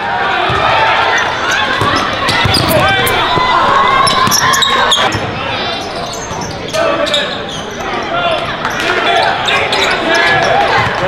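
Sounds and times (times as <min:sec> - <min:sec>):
voices of players and spectators: 0:00.0 - 0:11.0
basketball bouncing on court: 0:01.5 - 0:05.4.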